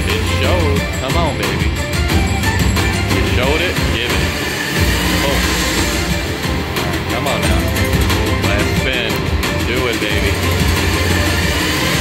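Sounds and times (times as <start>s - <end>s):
slot machine music: 0.0s - 12.0s
slot machine sound effects: 2.9s - 12.0s.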